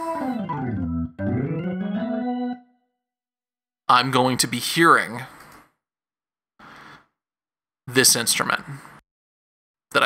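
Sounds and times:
sustained organ note: 0.0 - 2.8.

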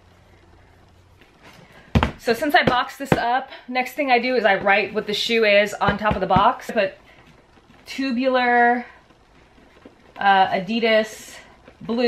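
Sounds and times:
faint handling sounds: 0.0 - 1.9, 6.7 - 12.0.

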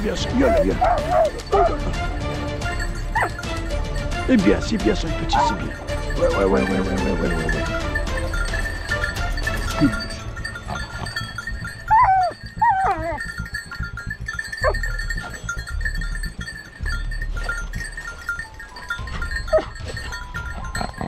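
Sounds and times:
dogs yelping: 0.0 - 3.7, 5.2 - 6.6, 8.4 - 16.7, 17.3 - 21.0.

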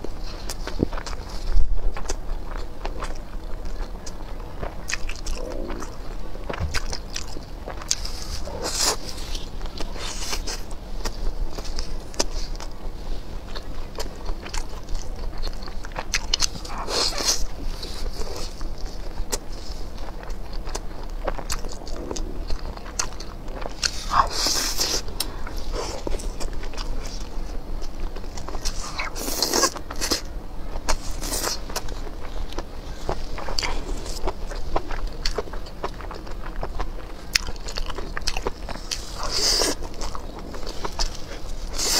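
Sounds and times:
chewing and biting food: 0.0 - 41.9.

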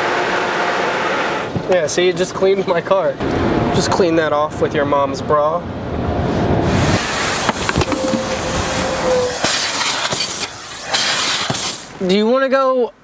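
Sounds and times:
car wash rushing hiss: 6.5 - 12.1
knocks: 7.5 - 8.6.

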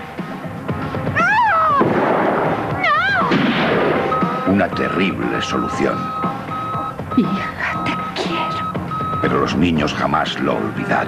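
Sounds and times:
woman screaming: 1.2 - 1.9, 2.8 - 3.3
young girl screaming: 1.2 - 1.9, 2.8 - 3.3.

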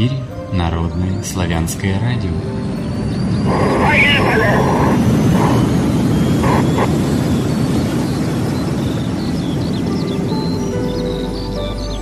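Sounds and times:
low rumbling intro music: 0.0 - 12.0
bird chirps: 2.3 - 12.0.

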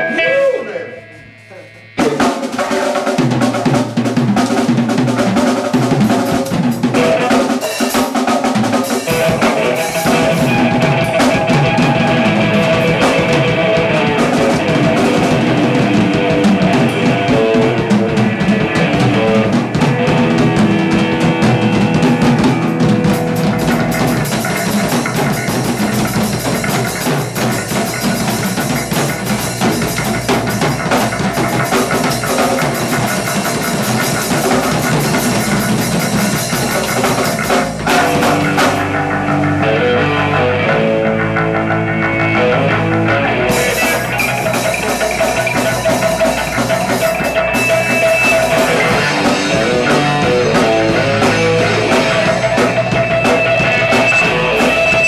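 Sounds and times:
drum kit: 0.0 - 55.0
electric guitar: 0.0 - 55.0.

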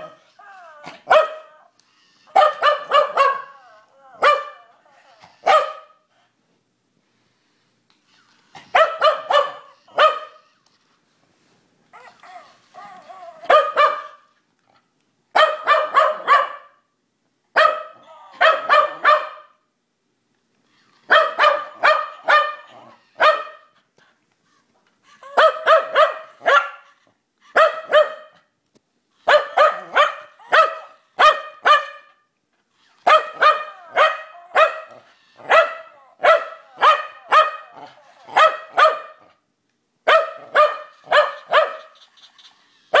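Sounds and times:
dog barking sharply: 15.4 - 16.8, 38.4 - 39.2, 40.1 - 41.9.

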